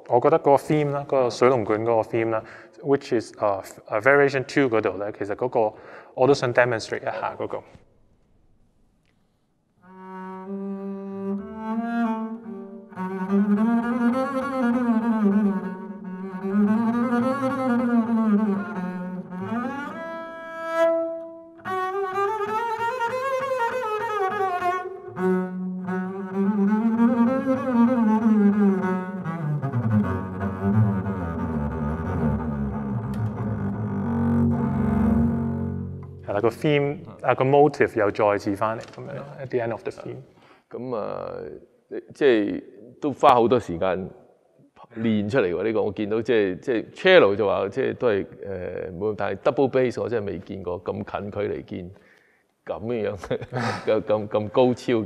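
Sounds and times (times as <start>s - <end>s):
bowed double bass: 9.9s - 37.2s.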